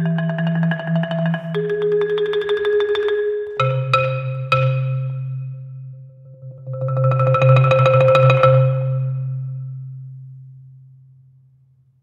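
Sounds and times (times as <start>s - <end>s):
low marimba note ringing: 0.0s - 9.9s.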